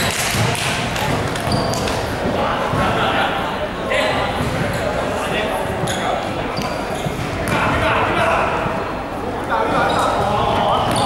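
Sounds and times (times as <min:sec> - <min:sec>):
people talking in a hall: 0:00.0 - 0:11.0.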